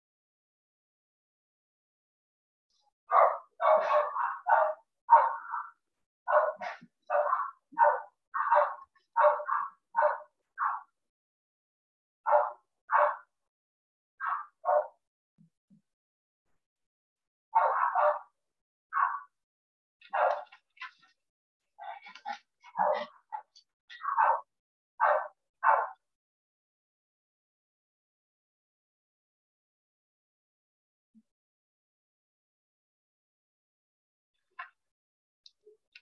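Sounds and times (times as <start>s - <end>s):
dog barking: 3.1s - 11.0s, 12.2s - 13.4s, 14.2s - 15.1s, 17.5s - 19.4s, 20.0s - 21.1s, 21.8s - 26.1s.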